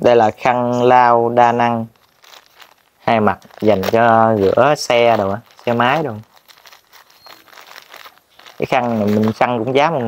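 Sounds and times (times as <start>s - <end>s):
plastic bag crinkling and tearing: 1.5s - 9.8s.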